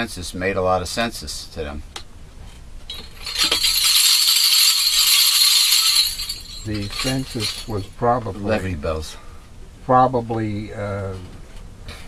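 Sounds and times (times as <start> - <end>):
hand rattle shaken: 2.9 - 8.0.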